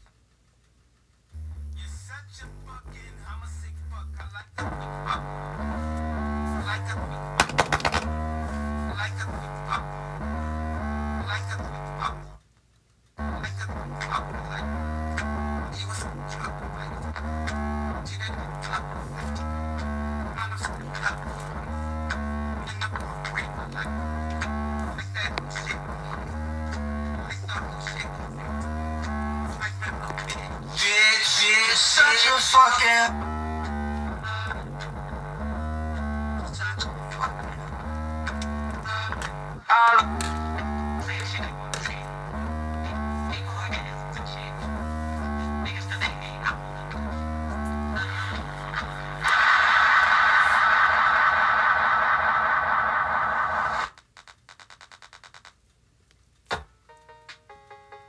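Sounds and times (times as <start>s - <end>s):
bass-heavy music from woofer: 1.3s - 12.4s, 13.2s - 54.0s
burst of noise: 49.2s - 54.0s.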